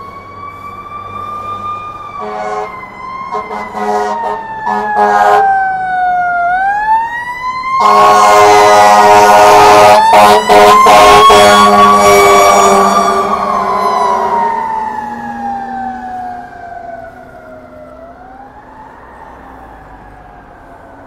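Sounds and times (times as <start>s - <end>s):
fire engine siren wailing: 0.0s - 21.0s
air horn blasting: 2.2s - 5.5s, 7.8s - 14.6s.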